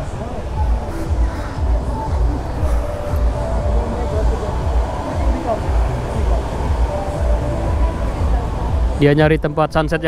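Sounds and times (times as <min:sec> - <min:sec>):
sea surf: 0:00.0 - 0:10.0
wind buffeting microphone: 0:00.0 - 0:10.0.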